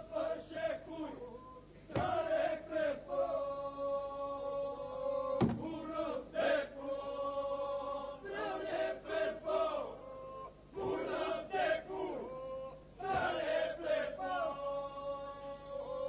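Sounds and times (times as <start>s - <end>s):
lead voices singing wavering phrases: 0.0s - 16.0s
men singing a drone: 0.0s - 16.0s.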